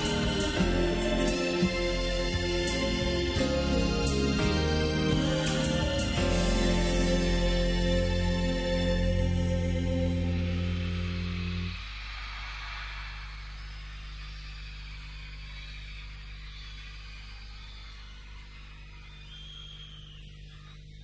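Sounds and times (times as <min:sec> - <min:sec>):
audience cheering and applause: 0:00.0 - 0:07.2, 0:10.1 - 0:20.0
low electrical hum: 0:13.2 - 0:21.0.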